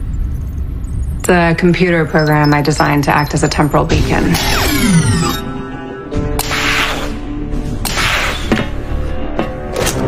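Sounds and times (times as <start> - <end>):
background music: 1.1 - 10.0.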